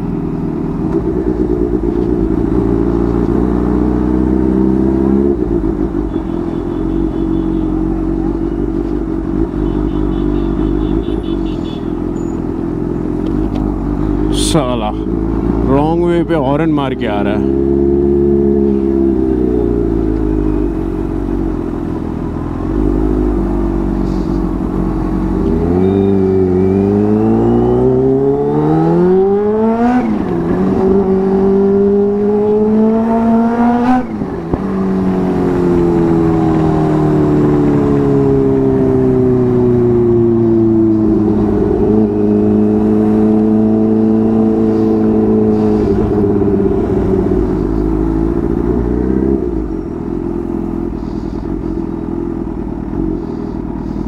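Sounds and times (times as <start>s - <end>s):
motorcycle engine revving: 0.0s - 16.0s, 17.0s - 54.0s.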